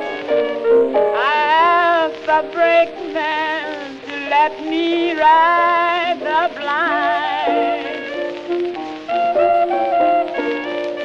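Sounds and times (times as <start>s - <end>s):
clarinet playing held notes: 0.0s - 2.4s, 6.2s - 11.0s
piano accompaniment: 0.0s - 11.0s.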